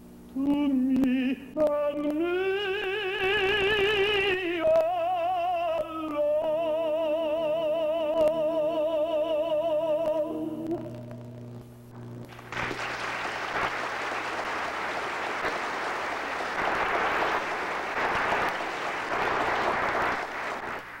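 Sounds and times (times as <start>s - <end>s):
audience applauding: 12.3s - 21.0s.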